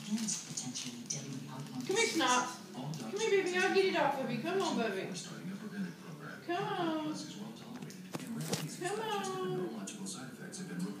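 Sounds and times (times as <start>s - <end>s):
television voice talking: 0.0s - 11.0s.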